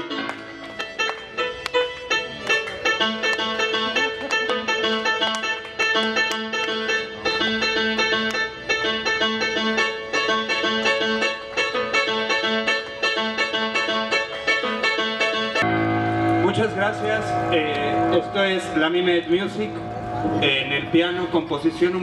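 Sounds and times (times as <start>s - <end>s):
accordion: 0.0s - 16.4s
plucked keyboard notes: 0.0s - 22.0s.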